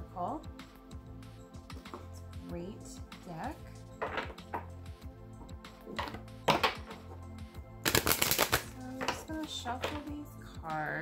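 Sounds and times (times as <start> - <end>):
soft background music: 0.0 - 11.0
cards shuffled by hand: 7.9 - 9.3.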